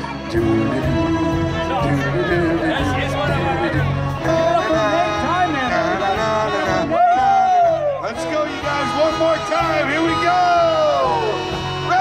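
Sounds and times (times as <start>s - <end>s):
guests chattering: 0.0s - 12.0s
live band playing: 0.0s - 12.0s
man singing: 0.0s - 12.0s.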